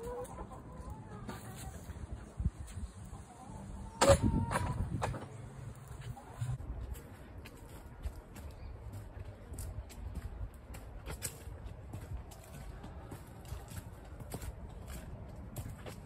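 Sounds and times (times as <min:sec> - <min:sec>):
footsteps on dirt and grass: 0:05.9 - 0:16.0.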